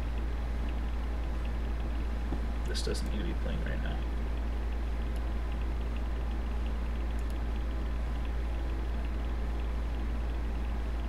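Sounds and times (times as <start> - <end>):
low hum: 0.0 - 11.0
faint clicks: 4.3 - 10.8.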